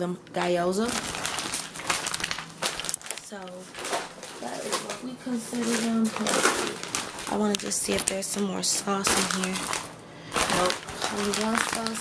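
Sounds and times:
plastic packaging crinkling: 0.6s - 12.0s.

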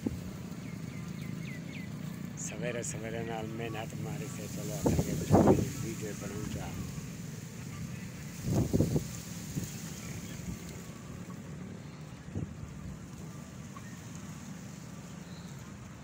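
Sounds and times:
wind buffeting microphone: 2.7s - 11.2s.

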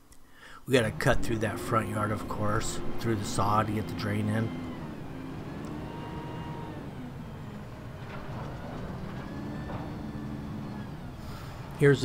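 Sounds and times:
diesel truck engine running: 0.6s - 12.0s
hydraulic hoist lowering container: 0.8s - 12.0s.

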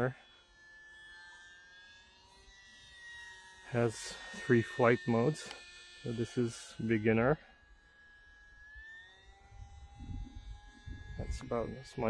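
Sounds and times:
small plane motor whine: 0.0s - 12.0s.

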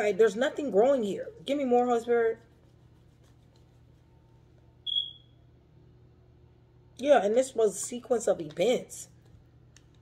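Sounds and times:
high-pitched electronic beep: 4.9s - 5.3s.

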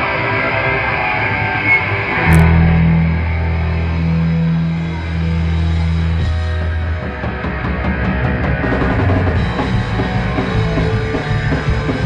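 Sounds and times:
punk rock band playing live: 0.0s - 12.0s
low guitar note ringing: 2.2s - 5.6s.

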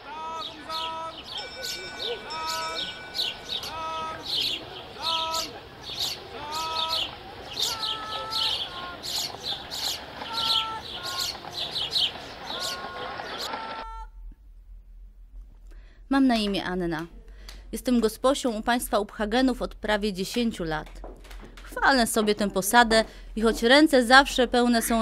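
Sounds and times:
birds chirping: 0.0s - 14.0s, 24.2s - 25.0s
short repeated pitched calls: 0.0s - 14.1s.

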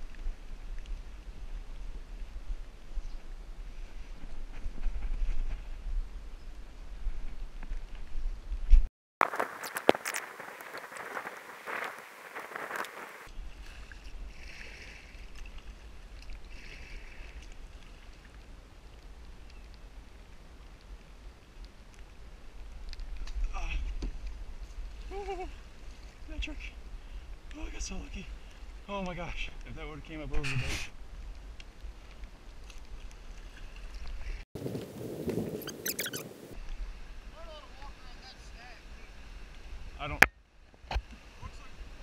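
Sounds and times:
wind rumble on microphone: 0.0s - 37.4s
splashing and crackling at microphone: 7.5s - 26.3s, 31.0s - 34.4s.

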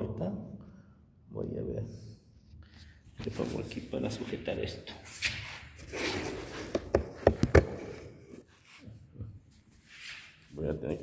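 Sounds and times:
sharp knocks and clicks of tools: 6.7s - 7.8s.

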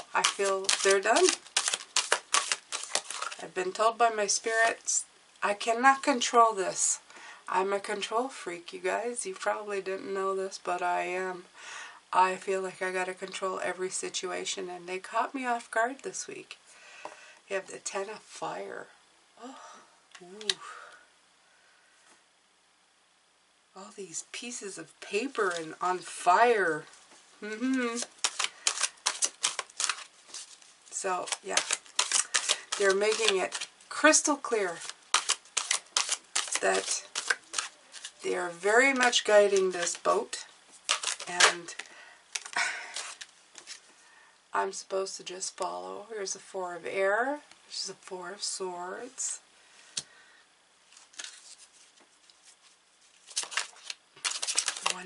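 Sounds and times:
cards being shuffled: 0.0s - 4.9s, 25.2s - 26.3s, 27.5s - 43.9s, 50.9s - 55.0s.

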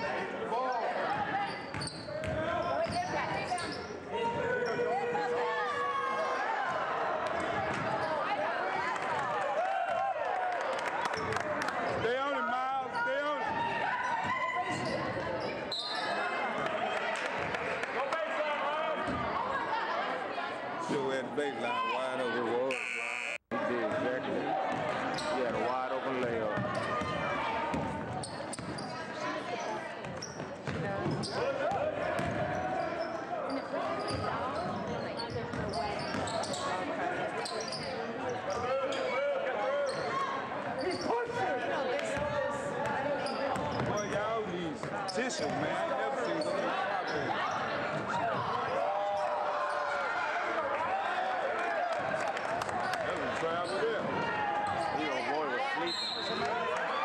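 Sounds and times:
voices and shouts in a gym: 0.0s - 57.0s
basketball bouncing on wooden floor: 30.1s - 31.2s.

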